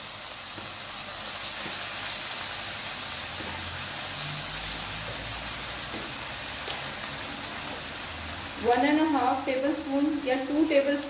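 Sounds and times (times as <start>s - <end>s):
food sizzling in a wok: 0.0s - 11.0s
sauce hissing on hot pan: 0.0s - 11.0s.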